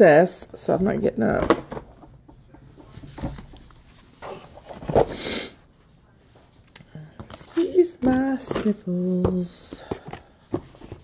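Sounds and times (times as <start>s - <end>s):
person sniffling: 5.0s - 5.6s.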